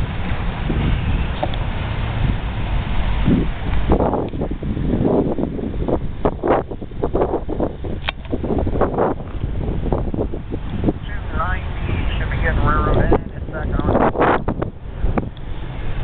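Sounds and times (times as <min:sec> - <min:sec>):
dump trucks rumbling: 0:00.0 - 0:16.0
wind buffeting microphone: 0:00.0 - 0:16.0.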